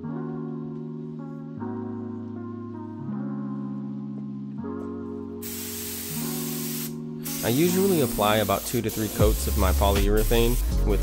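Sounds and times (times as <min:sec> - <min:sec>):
background music: 0:00.0 - 0:11.0
spray gun hissing: 0:05.4 - 0:10.7.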